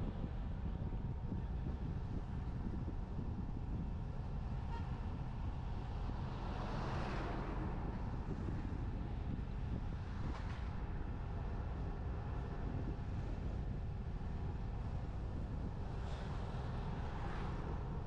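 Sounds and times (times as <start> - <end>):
wind and road noise: 0.0 - 18.0.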